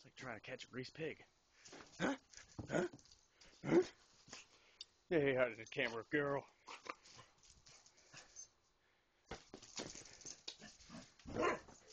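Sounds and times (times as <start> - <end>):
puppy barking: 11.3 - 11.8.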